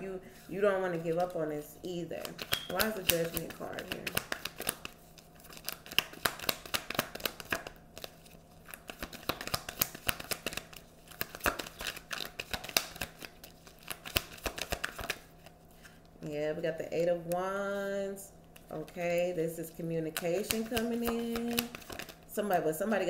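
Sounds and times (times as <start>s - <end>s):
cards being shuffled: 2.1s - 16.0s, 20.1s - 22.2s.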